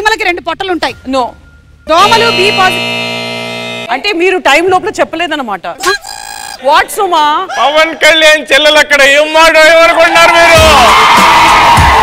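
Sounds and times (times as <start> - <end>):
buzzer-like electronic tone: 1.6 - 4.2, 5.8 - 6.6.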